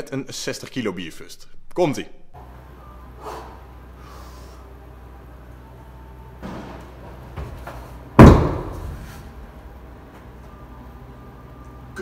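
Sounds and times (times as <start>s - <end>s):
heavy keg thud on floor: 7.4s - 9.1s.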